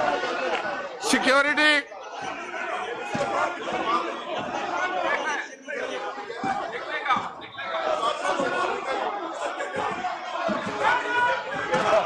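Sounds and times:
crowd chatter in large hall: 0:00.0 - 0:12.0.

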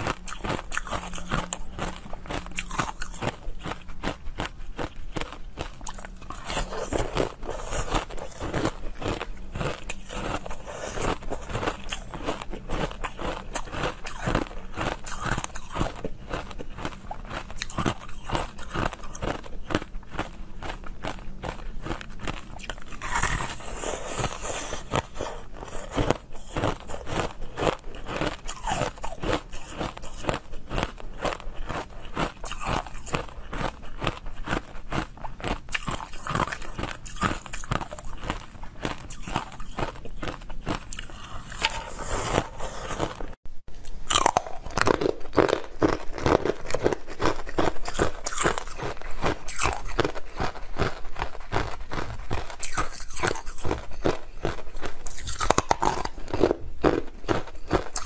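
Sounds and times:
crunching ice: 0:00.0 - 0:43.4, 0:44.1 - 0:58.0.

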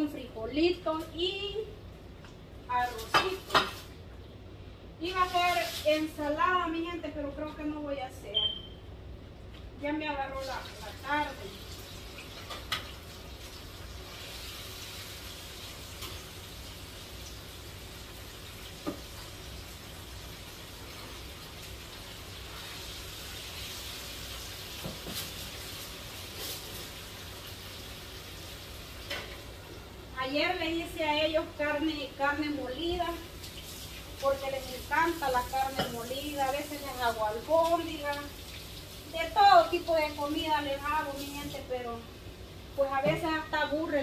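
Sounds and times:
food sizzling in a frying pan: 0:10.4 - 0:44.0.

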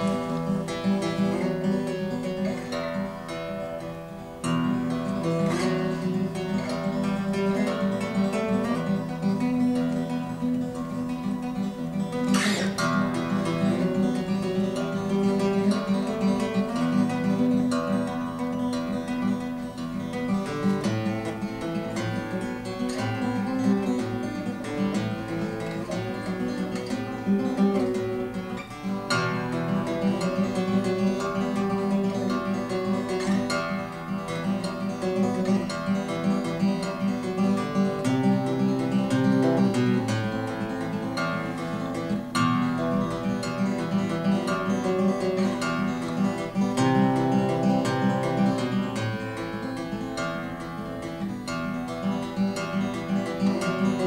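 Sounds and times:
acoustic guitar playing: 0:00.0 - 0:54.0.

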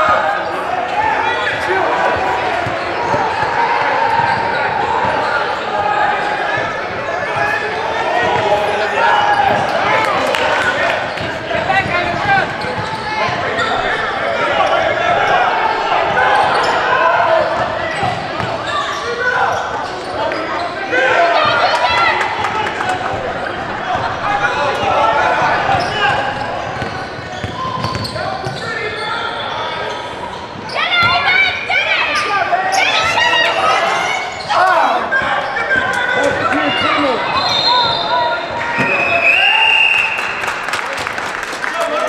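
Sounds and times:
voices and shouts echoing: 0:00.0 - 0:42.0.

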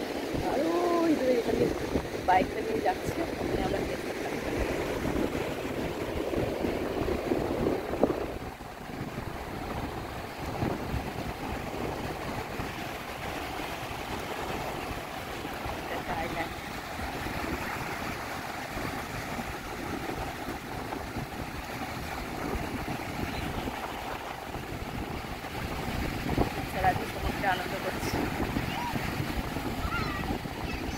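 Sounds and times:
surf breaking on beach: 0:00.0 - 0:30.9
wind buffeting microphone: 0:00.0 - 0:30.9.

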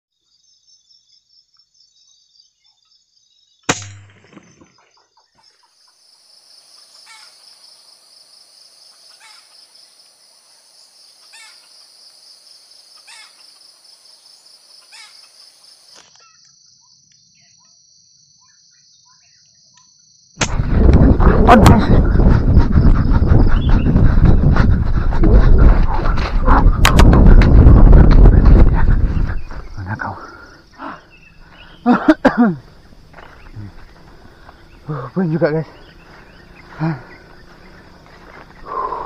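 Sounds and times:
forest insects droning: 0:00.2 - 0:39.0
sharp loud crack: 0:03.7 - 0:04.5, 0:20.4 - 0:20.9.

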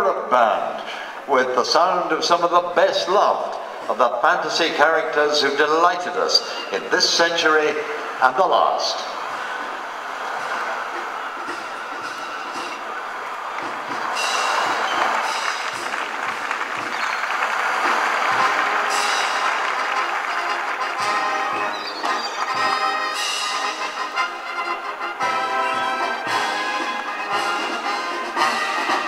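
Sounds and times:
steady rushing noise: 0:01.1 - 0:29.0
low drumbeats: 0:07.6 - 0:29.0
marching brass band: 0:09.1 - 0:29.0.

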